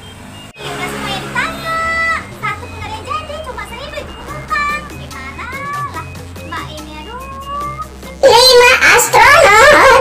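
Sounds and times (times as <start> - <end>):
children shouting: 0.6 - 10.0.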